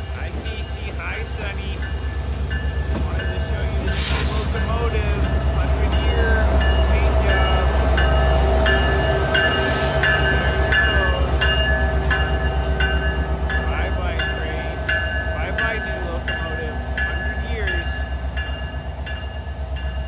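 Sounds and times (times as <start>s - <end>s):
diesel locomotive rumble: 0.0s - 20.0s.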